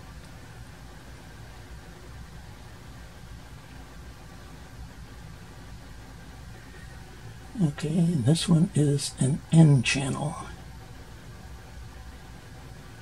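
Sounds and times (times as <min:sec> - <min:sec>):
low hum: 0:00.0 - 0:13.0
even hiss: 0:06.2 - 0:10.6.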